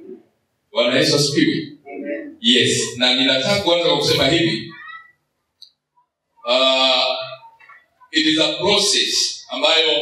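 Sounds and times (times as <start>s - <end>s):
man's voice through a microphone: 0.7s - 5.0s, 6.4s - 10.0s.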